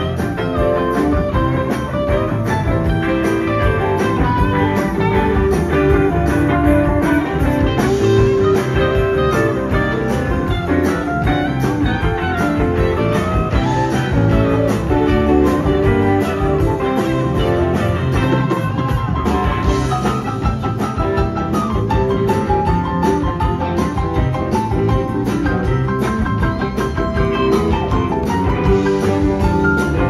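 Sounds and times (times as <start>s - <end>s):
bass: 0.0s - 30.0s
drums playing steady beat: 0.0s - 30.0s
electric guitars: 0.0s - 30.0s
keyboards: 0.0s - 30.0s.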